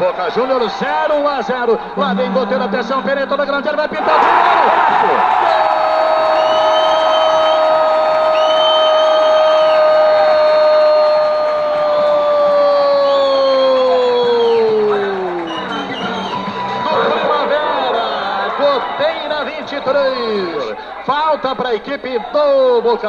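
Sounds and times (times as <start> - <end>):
crowd noise: 0.0 - 23.0
excited commentary: 0.0 - 23.0.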